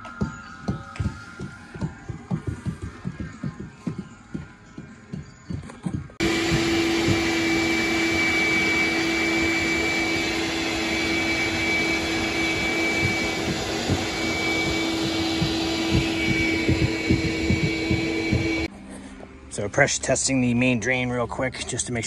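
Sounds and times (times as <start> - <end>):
shop vacuum running: 6.2 - 18.7.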